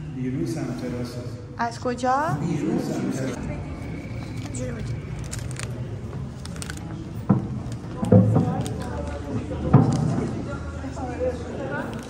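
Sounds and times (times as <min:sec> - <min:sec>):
people talking: 0:00.1 - 0:07.2.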